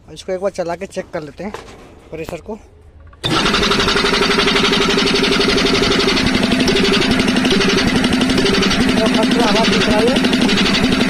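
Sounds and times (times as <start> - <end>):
air compressor clattering: 0.7 - 11.0.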